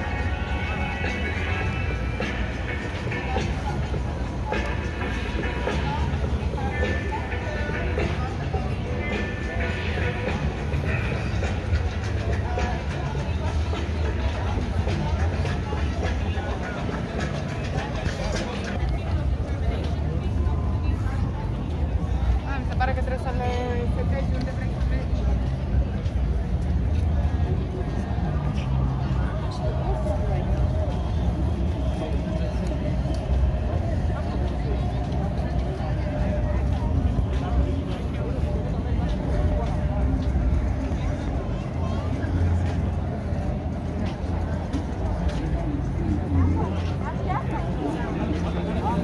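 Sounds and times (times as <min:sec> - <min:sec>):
music playing: 0:00.0 - 0:49.0
people talking: 0:00.0 - 0:49.0
steady low rumble: 0:00.0 - 0:49.0.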